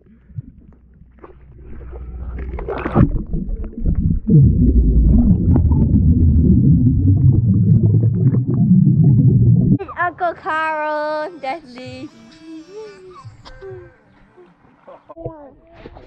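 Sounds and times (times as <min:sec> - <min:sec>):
underwater rumbling and bubbling: 0:00.0 - 0:09.8
splash into water: 0:01.2 - 0:04.0.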